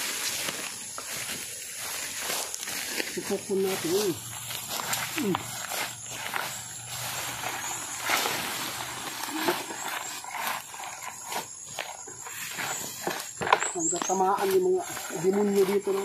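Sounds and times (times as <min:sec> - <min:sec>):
footsteps through brush: 0:00.0 - 0:16.0
leaves and vines rustling: 0:00.0 - 0:16.0
pole dragged through undergrowth: 0:00.0 - 0:16.0.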